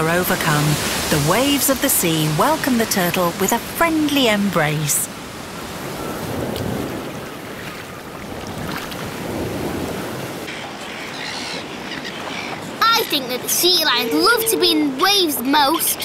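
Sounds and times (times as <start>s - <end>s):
sea waves washing: 0.0s - 16.0s.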